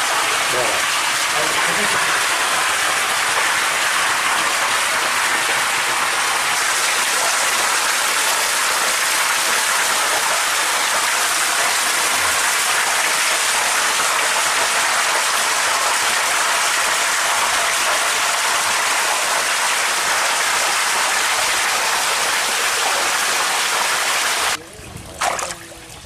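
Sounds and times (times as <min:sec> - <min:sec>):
water rushing hiss: 0:00.0 - 0:24.6.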